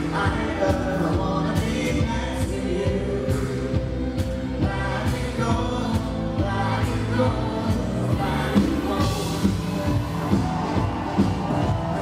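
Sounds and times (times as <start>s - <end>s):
man singing into a microphone: 0.0s - 3.9s
pop band playing: 0.0s - 12.0s
drum beat: 8.2s - 12.0s.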